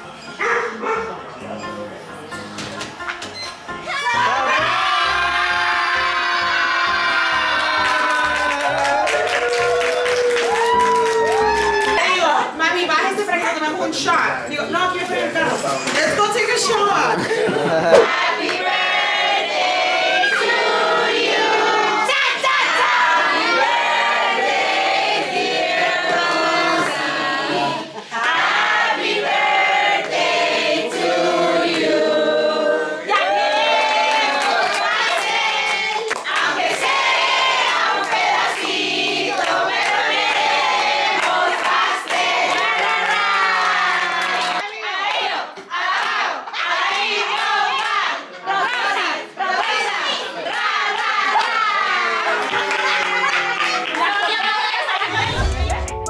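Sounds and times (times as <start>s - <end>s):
background music: 0.0s - 10.1s, 55.0s - 56.0s
dog barking: 0.4s - 1.2s, 17.8s - 18.1s
people singing a celebration song: 17.0s - 56.0s.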